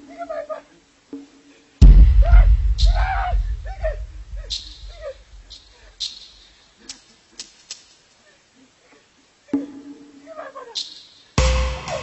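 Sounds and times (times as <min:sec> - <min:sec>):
low rumble: 0:01.8 - 0:05.5.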